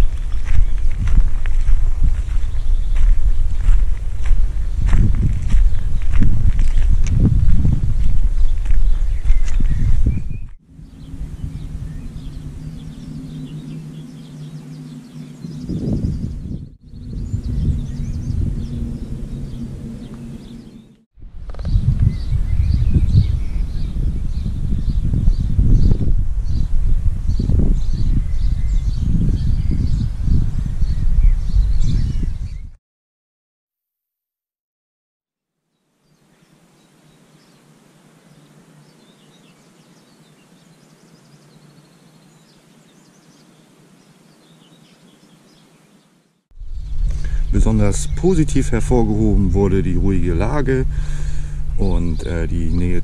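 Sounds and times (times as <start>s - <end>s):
steady low hum: 0.0s - 29.2s, 46.6s - 53.0s
wind on microphone: 0.0s - 32.8s, 46.5s - 53.0s
bird chirps: 8.0s - 21.0s
slowly moving vehicle rumble: 10.6s - 21.9s, 46.6s - 53.0s.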